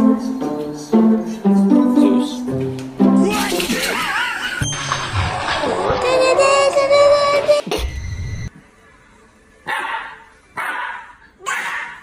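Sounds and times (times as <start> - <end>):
puppy barking: 9.7 - 12.0.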